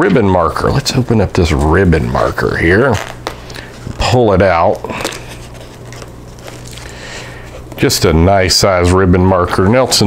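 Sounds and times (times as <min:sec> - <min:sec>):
steady low hum: 0:00.0 - 0:10.0
book handling rustle: 0:04.9 - 0:07.8.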